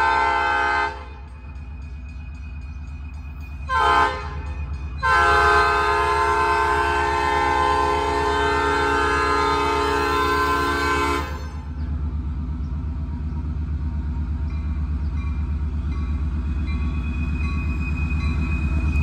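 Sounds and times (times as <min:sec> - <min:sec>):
locomotive air horn blasts: 0:00.0 - 0:01.2, 0:03.7 - 0:11.7
locomotive low rumble: 0:00.0 - 0:19.0.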